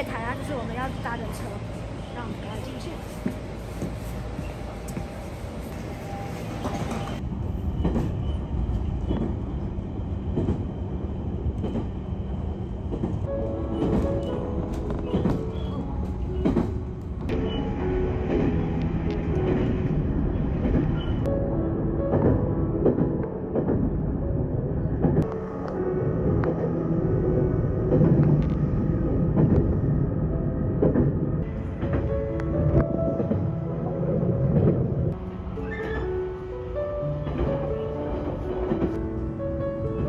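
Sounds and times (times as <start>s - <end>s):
train rumbling on tracks: 0.0s - 40.0s
gentle background music: 13.3s - 40.0s.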